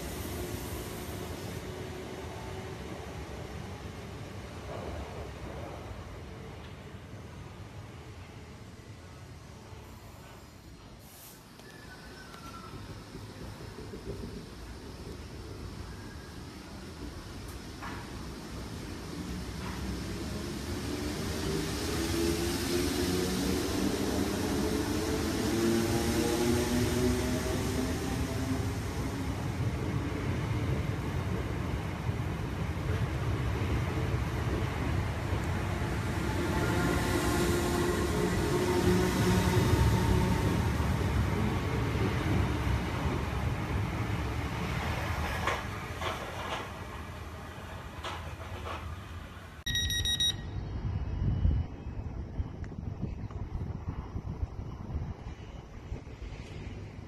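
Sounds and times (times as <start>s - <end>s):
wheels rumbling on rail: 9.6s - 49.7s, 50.4s - 57.0s.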